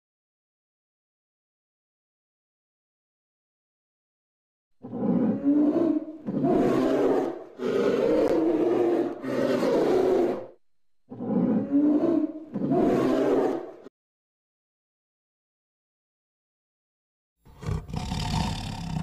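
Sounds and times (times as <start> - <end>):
polar bear growling: 4.8 - 13.9, 17.5 - 19.0.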